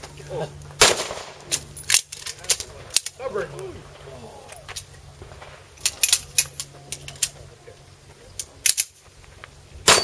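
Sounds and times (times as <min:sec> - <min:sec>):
quieter sharp cracks: 0:00.8 - 0:03.2.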